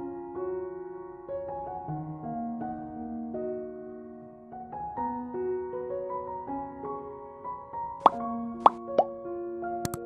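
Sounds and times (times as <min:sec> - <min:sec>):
soft keyboard background music: 0:00.0 - 0:10.0.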